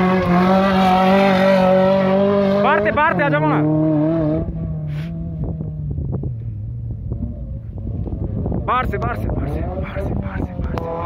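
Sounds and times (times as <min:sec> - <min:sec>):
rally car engine rumbling: 0:00.0 - 0:11.0.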